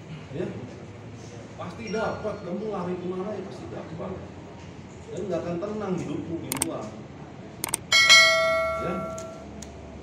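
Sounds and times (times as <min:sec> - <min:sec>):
quick double click: 0:07.6 - 0:07.9
bright notification bell chime: 0:07.9 - 0:09.4.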